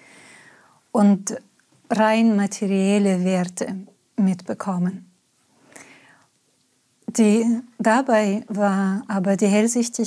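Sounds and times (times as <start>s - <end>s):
soft breath in: 0.0s - 0.8s, 5.6s - 6.3s.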